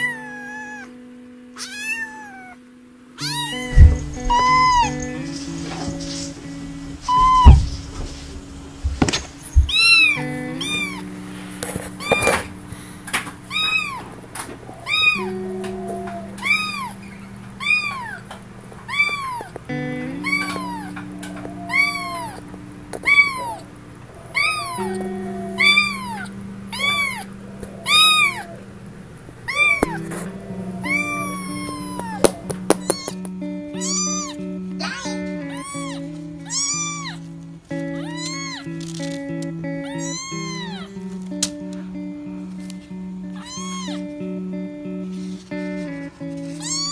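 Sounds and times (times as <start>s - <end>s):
kitten meowing: 0.0s - 0.9s, 1.6s - 2.6s, 3.2s - 6.3s, 7.1s - 7.9s, 9.0s - 11.1s, 11.8s - 12.5s, 13.5s - 14.1s, 14.7s - 28.6s, 29.5s - 37.2s, 37.8s - 39.1s, 39.8s - 41.0s, 43.3s - 44.1s, 46.5s - 46.9s
background music with held notes: 0.0s - 46.9s.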